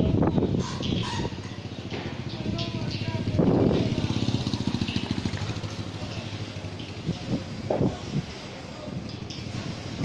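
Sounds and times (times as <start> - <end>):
motorcycle passing by: 0.5 - 8.2.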